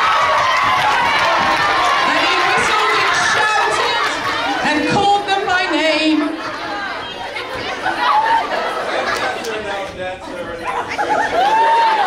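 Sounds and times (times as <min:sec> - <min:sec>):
indistinct chatter in a hall: 0:00.0 - 0:12.0.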